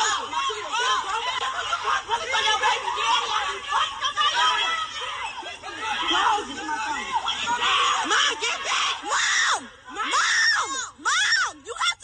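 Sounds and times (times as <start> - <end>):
women screaming and yelling: 0.0 - 12.0.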